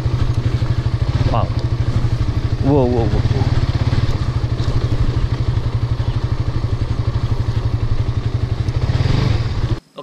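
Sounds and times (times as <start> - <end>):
motorcycle engine running: 0.0 - 9.8.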